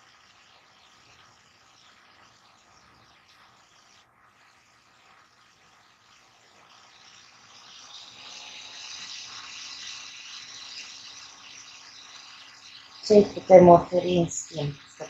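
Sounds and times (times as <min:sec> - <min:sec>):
steady rushing hiss: 0:00.0 - 0:15.0.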